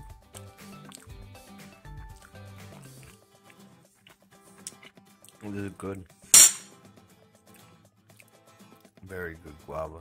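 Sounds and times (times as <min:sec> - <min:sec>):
spoon clinking on ceramic plate: 0:06.4 - 0:06.7.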